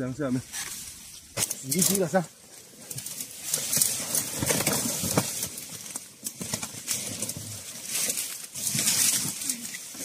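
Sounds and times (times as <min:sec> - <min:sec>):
dry leaves rustling and crackling: 0:00.4 - 0:10.0.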